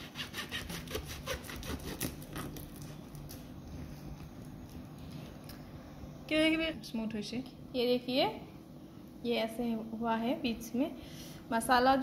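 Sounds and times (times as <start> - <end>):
knife sawing on chopping board: 0.0 - 2.2.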